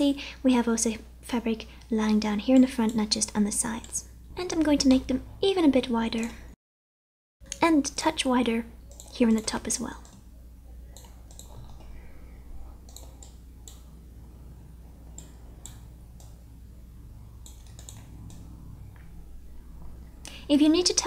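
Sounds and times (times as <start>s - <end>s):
computer mouse clicks: 2.5s - 3.1s, 8.9s - 10.3s, 10.9s - 12.0s, 12.8s - 14.0s, 15.0s - 16.5s, 17.4s - 19.2s
faint low hum: 7.4s - 21.0s.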